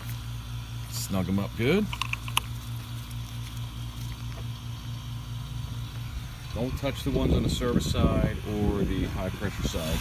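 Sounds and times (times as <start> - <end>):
vacuum pump pulsing hum: 0.0 - 10.0.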